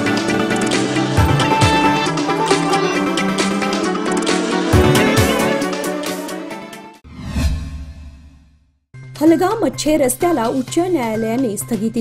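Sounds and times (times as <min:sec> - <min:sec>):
whoosh sound effect: 0:07.1 - 0:08.5.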